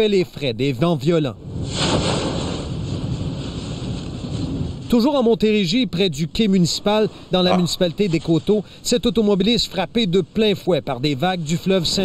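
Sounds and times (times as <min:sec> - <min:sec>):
storm wind: 0:01.3 - 0:12.0.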